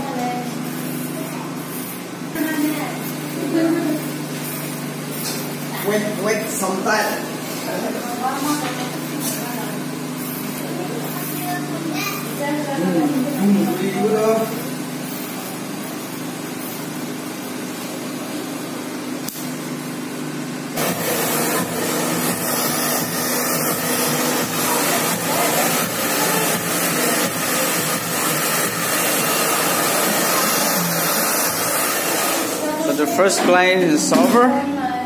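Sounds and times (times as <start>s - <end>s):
electric hair clippers humming: 0.0s - 35.0s
hair dryer blowing: 2.0s - 19.3s, 20.7s - 34.4s.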